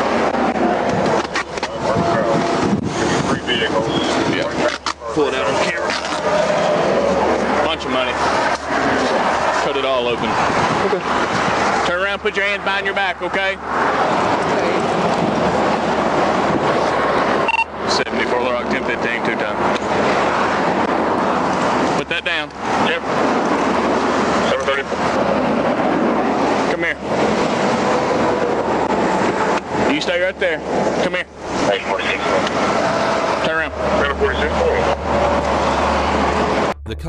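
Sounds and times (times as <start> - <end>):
highway traffic roar: 0.0 - 36.9.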